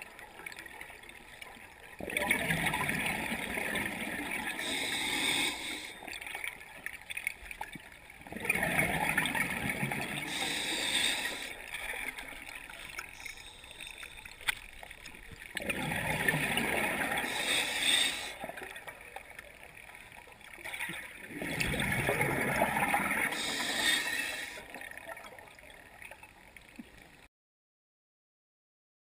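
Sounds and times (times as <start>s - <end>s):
gurgling underwater exhaled bubbles: 1.9s - 6.9s, 7.5s - 19.0s, 20.5s - 25.7s.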